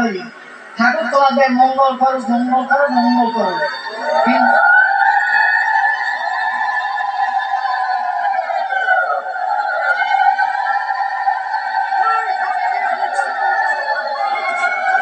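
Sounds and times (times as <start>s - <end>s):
crowd holding wavering tones: 0.0s - 15.0s.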